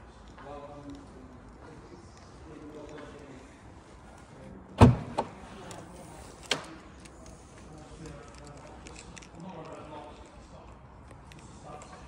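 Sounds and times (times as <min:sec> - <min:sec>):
car boot latch clunk: 0:04.8 - 0:05.4.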